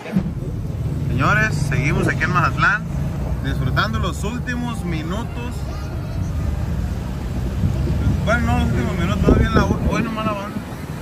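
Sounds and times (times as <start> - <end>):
car driving rumble: 0.0 - 11.0.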